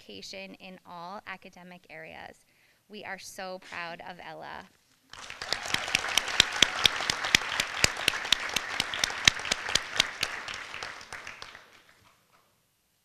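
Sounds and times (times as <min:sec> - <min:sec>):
audience applauding: 0:05.1 - 0:12.1
loud close hand claps: 0:05.1 - 0:12.2.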